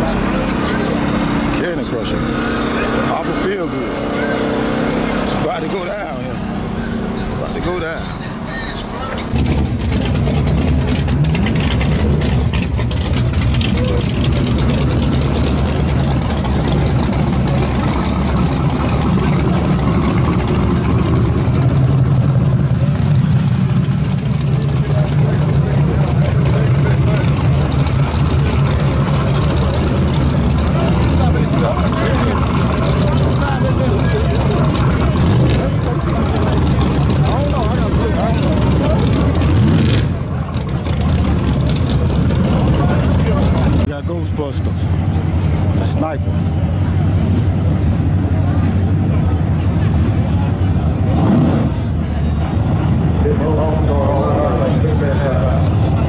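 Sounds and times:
car engine idling: 0:00.0 - 0:56.0
crowd chatter: 0:00.0 - 0:56.0.

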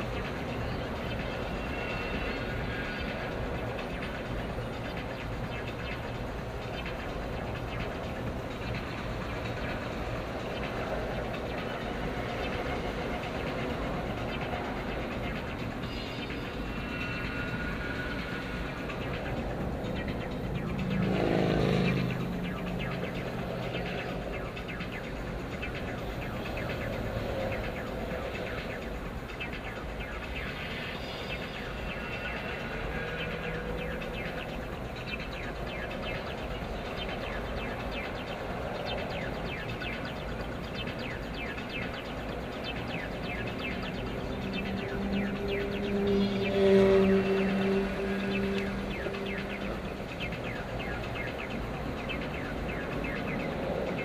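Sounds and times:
car road and engine noise: 0:00.0 - 0:54.0
vehicle passing close: 0:17.3 - 0:24.7, 0:43.3 - 0:54.0.

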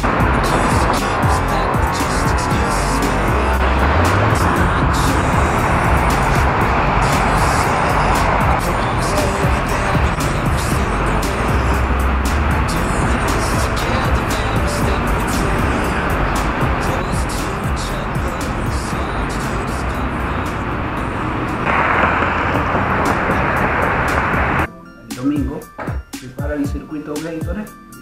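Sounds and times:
pop music with steady beat: 0:00.0 - 0:28.0
wind rushing on microphone: 0:19.8 - 0:24.7.

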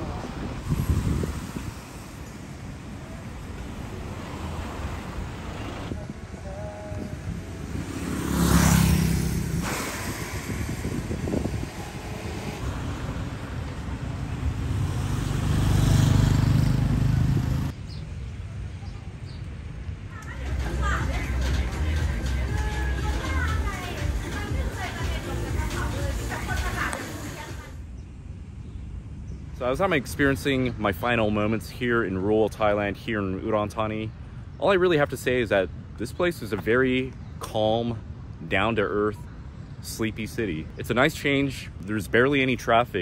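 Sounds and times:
cars driving past: 0:00.0 - 0:17.9
street noise: 0:00.0 - 0:43.0.

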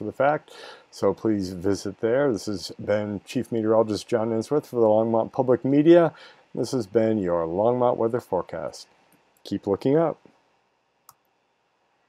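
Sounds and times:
person speaking: 0:00.0 - 0:10.3.

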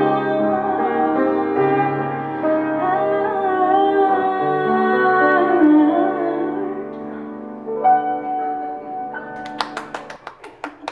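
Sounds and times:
hand claps: 0:09.4 - 0:10.9.

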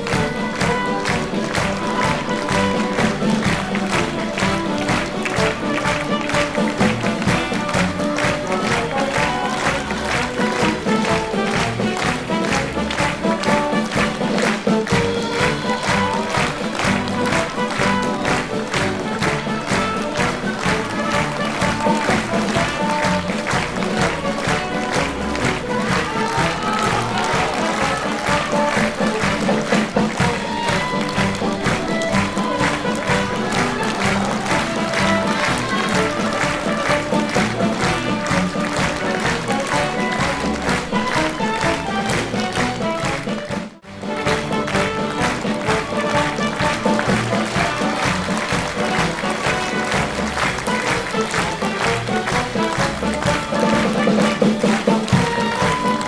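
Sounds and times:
crowd clapping: 0:00.0 - 0:56.0
orchestral music: 0:00.0 - 0:56.0.

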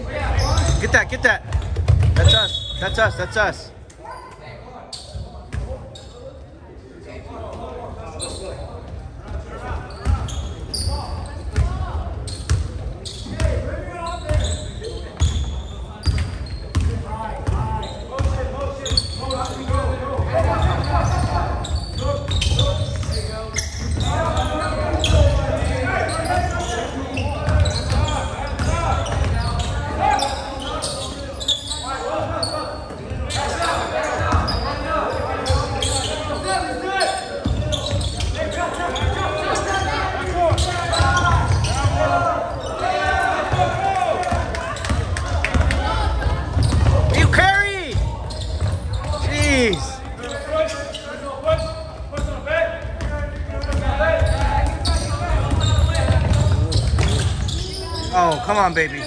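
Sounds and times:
sneakers squeaking: 0:00.0 - 0:06.5, 0:08.0 - 0:59.0
basketball bouncing on court: 0:00.6 - 0:02.5, 0:15.2 - 0:21.5, 0:22.2 - 0:25.7, 0:27.4 - 0:29.9, 0:43.4 - 0:49.3, 0:51.5 - 0:57.7.

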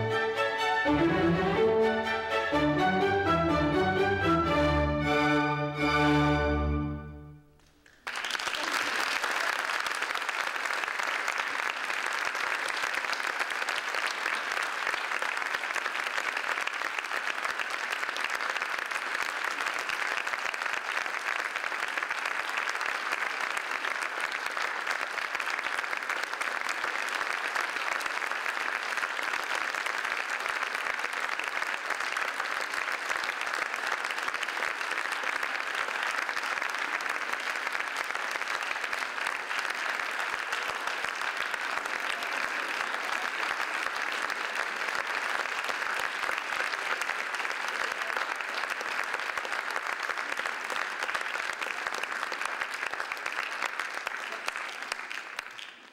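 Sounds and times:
audience applauding: 0:07.6 - 0:55.9.

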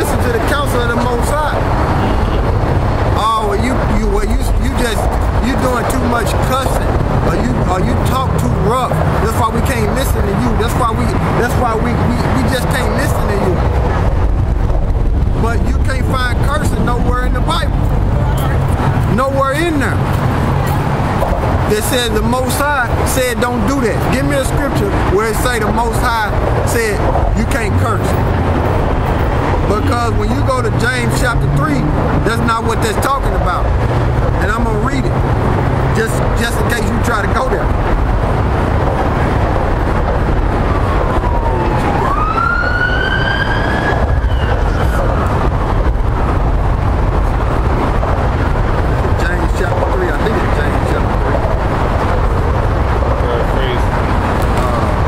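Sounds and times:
passing traffic: 0:00.0 - 0:55.0
indistinct voices: 0:15.3 - 0:35.2, 0:49.0 - 0:55.0
siren wail: 0:40.4 - 0:45.8.

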